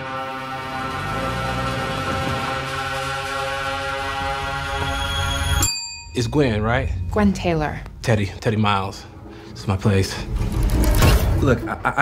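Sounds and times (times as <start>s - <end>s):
ominous music chord: 0.0s - 5.6s, 6.2s - 12.0s
desk service bell ding: 5.5s - 6.3s.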